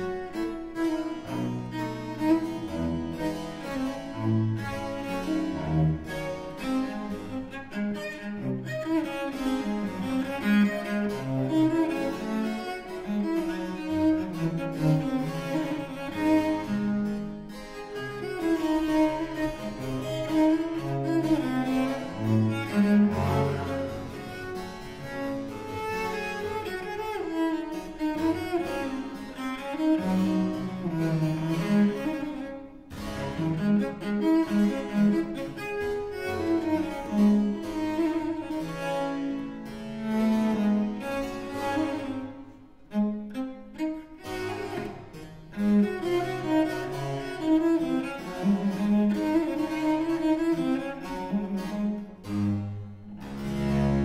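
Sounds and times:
cello bowed fast: 0:00.0 - 0:54.0.

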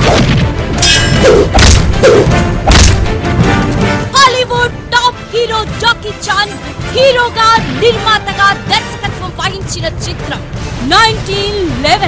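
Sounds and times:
trailer music: 0:00.0 - 0:12.0
heavy punch thuds: 0:01.4 - 0:02.0, 0:02.6 - 0:03.2.

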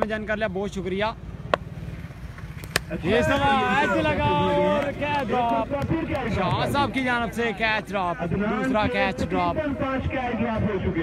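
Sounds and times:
faint outdoor background noise: 0:00.0 - 0:11.0
cricket bat striking ball: 0:01.5 - 0:01.7, 0:02.6 - 0:03.4.

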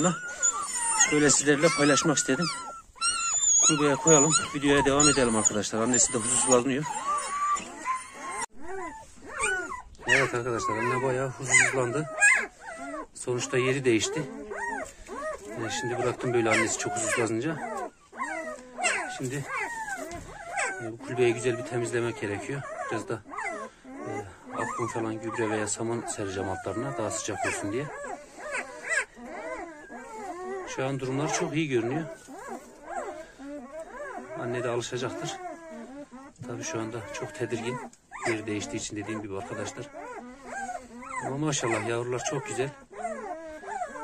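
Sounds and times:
dog whining: 0:00.0 - 0:44.0
puppies whimpering and crying: 0:00.0 - 0:44.0.

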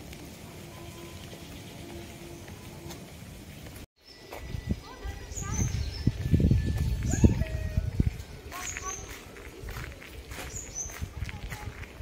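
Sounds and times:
small birds chirping: 0:03.5 - 0:11.8.

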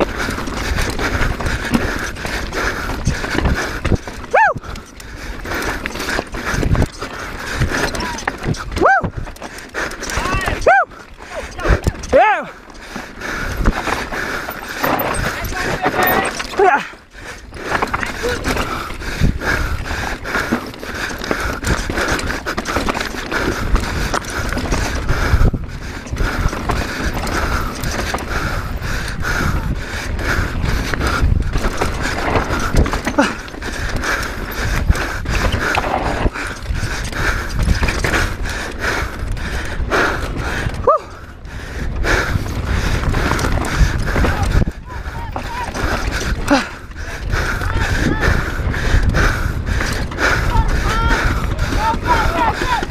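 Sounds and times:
wind rumble on microphone: 0:00.0 - 0:12.2, 0:17.2 - 0:52.9
mountain bike clattering over rocks: 0:00.0 - 0:41.0, 0:41.9 - 0:52.9.

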